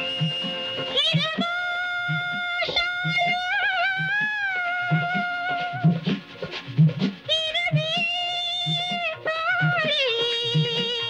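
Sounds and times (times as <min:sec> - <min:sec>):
hand drum beat: 0:00.0 - 0:11.0
held instrumental notes: 0:00.0 - 0:11.0.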